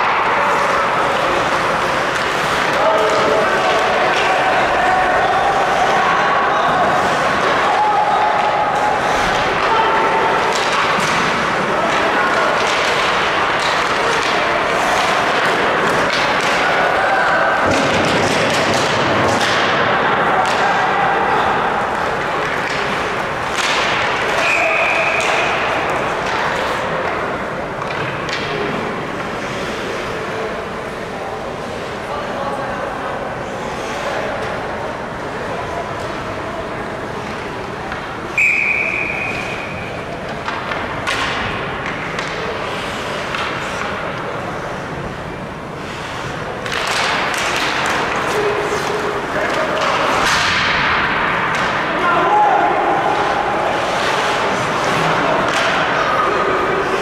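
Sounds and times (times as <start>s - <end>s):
hockey sticks and puck knocking: 0.0s - 5.8s, 7.0s - 29.4s, 37.2s - 44.4s, 46.5s - 57.0s
skate blades on ice: 0.0s - 30.4s, 45.8s - 57.0s
arena crowd murmur: 0.0s - 57.0s
referee's whistle: 38.4s - 39.7s.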